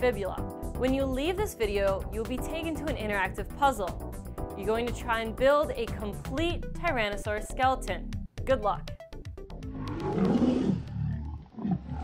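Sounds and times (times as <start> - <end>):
deep growling animal roar: 9.6 - 12.0.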